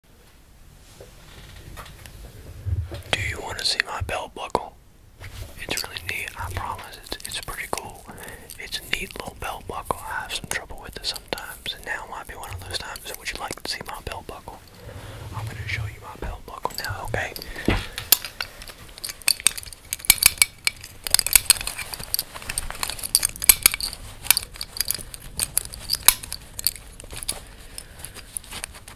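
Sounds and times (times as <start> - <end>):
man whispering: 3.1 - 4.8, 5.6 - 17.7.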